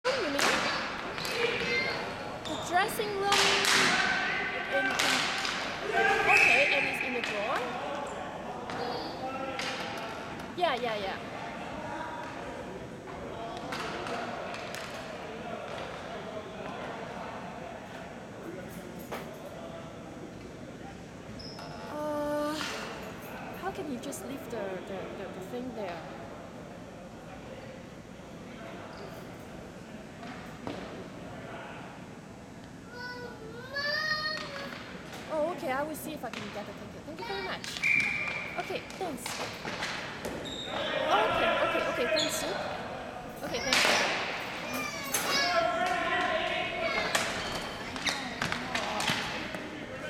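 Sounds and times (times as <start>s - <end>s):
distant voices of players: 0.0s - 50.0s
hockey sticks clacking: 0.2s - 1.8s, 3.3s - 4.1s, 37.6s - 40.4s, 43.7s - 44.3s, 47.0s - 49.7s.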